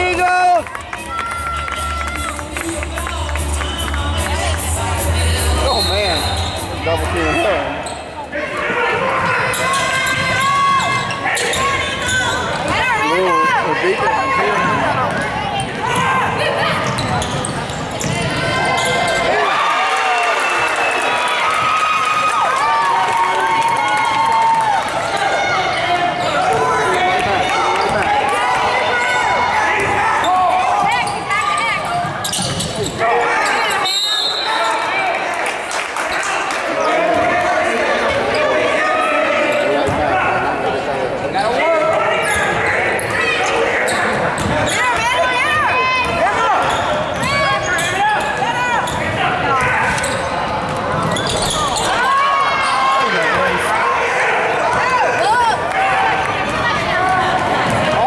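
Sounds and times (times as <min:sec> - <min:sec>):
voices echoing in hall: 0:00.0 - 0:58.0.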